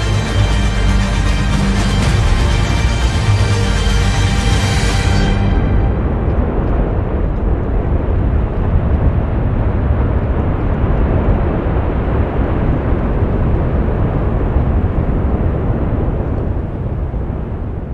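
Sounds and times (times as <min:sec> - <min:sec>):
volcanic vent deep rushing: 0:00.0 - 0:17.9.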